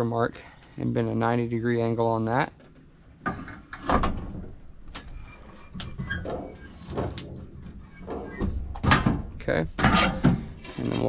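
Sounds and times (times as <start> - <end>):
sheet metal scraping and rattling: 3.2 - 11.0.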